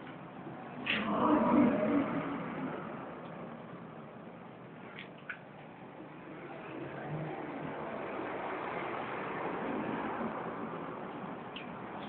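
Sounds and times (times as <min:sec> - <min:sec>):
outdoor background noise: 0:00.0 - 0:12.0
motor vehicle passing by: 0:00.8 - 0:03.6, 0:06.1 - 0:11.4.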